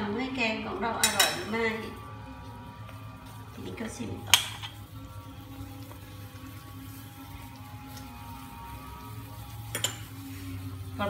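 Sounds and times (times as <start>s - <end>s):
soup bubbling: 1.7s - 11.0s.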